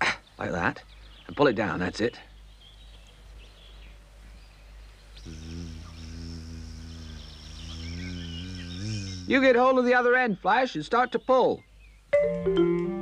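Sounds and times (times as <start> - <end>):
faint hiss: 0.0 - 12.2
bumblebee buzzing drone: 5.0 - 9.6.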